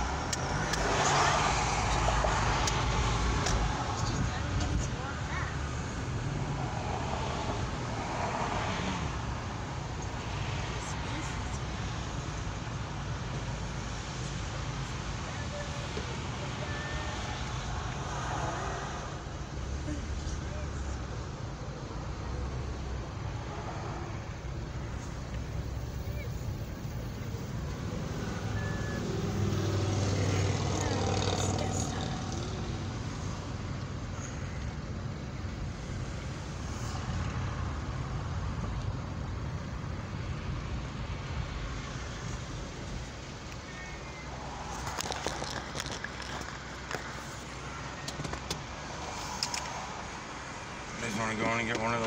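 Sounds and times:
car engine and tyre rumble: 0.0 - 52.0.

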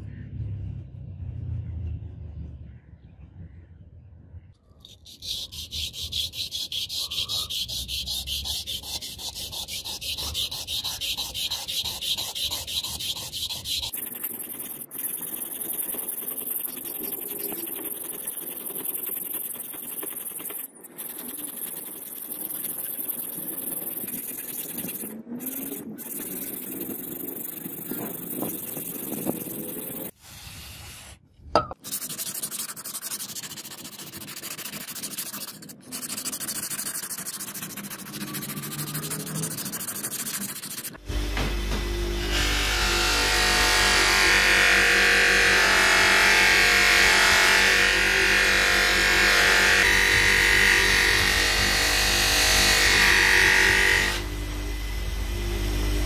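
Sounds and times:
sharpening stone scraping knife blade: 4.9 - 18.8.

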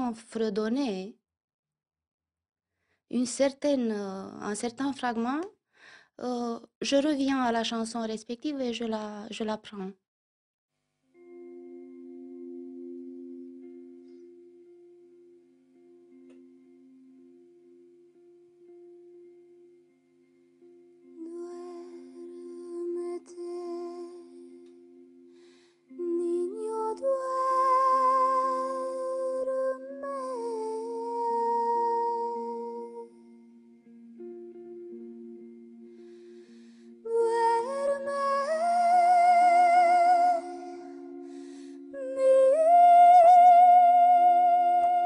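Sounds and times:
soft guitar chord ringing: 11.1 - 45.0.

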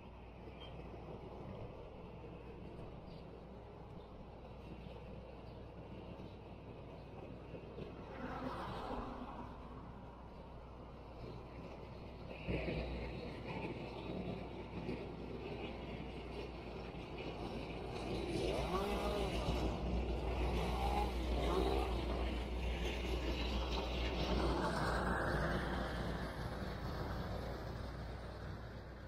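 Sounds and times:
heavy engine deep hum: 0.0 - 29.0.

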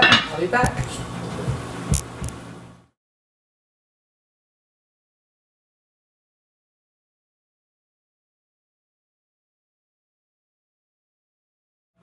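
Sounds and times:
steady low hum: 0.0 - 3.0
soft low thumps: 0.6 - 2.5.

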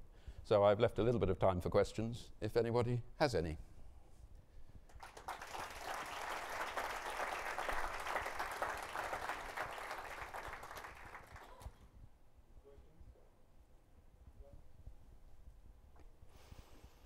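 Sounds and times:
audience applauding: 4.9 - 11.8.

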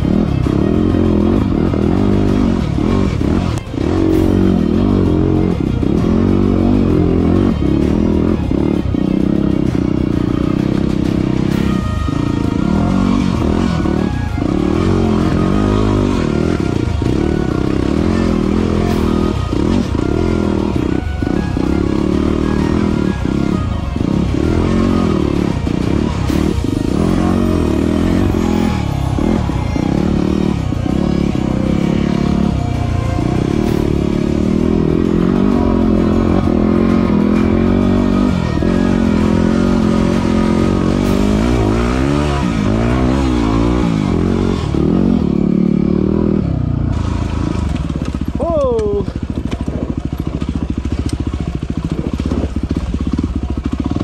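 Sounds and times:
music: 0.0 - 49.4, 50.0 - 54.0
motorcycle engine revving: 0.0 - 54.0.

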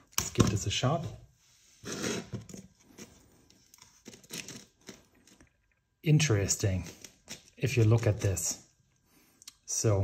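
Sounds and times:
bread crust crackling and tearing: 2.8 - 8.8.

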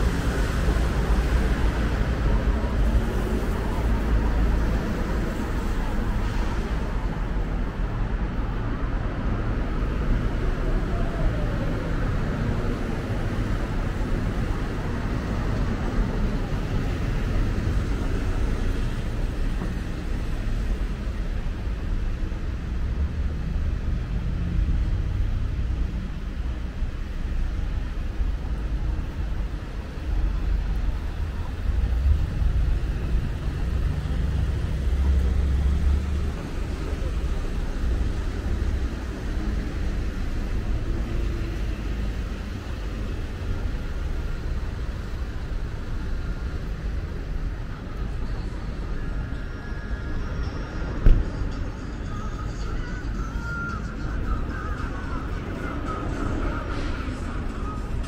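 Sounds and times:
traffic rumble: 0.0 - 58.0.

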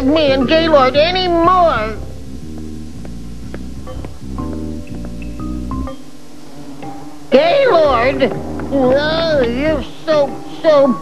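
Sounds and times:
throbbing bass music: 0.0 - 6.0, 7.6 - 10.2.

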